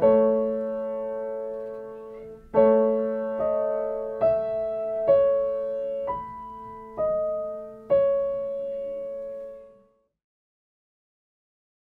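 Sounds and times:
piano playing slow chords: 0.0 - 10.0.

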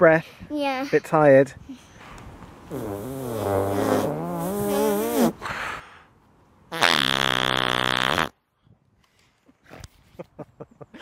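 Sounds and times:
raspberry blown on skin: 2.7 - 5.4, 6.7 - 8.3.

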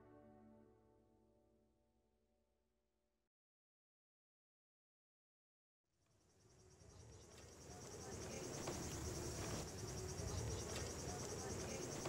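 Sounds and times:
crickets chirping: 6.0 - 12.0.

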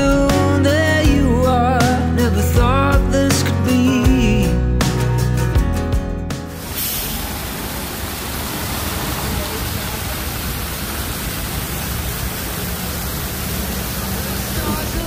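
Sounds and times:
fountain jets splashing: 6.6 - 15.0.

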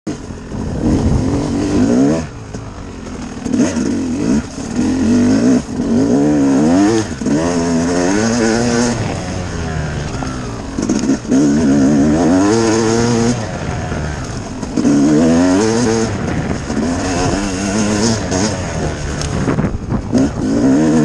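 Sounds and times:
dirt bike engine revving: 0.1 - 21.0.

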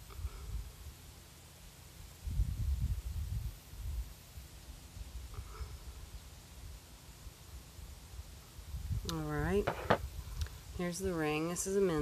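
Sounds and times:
wind buffeting microphone: 2.2 - 4.2, 8.6 - 11.3.

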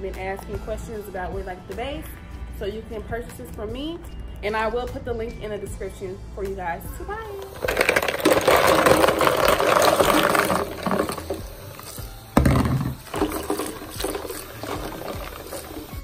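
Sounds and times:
background music: 0.0 - 16.0
water running into sink: 7.3 - 16.0
thump: 12.4 - 13.0.

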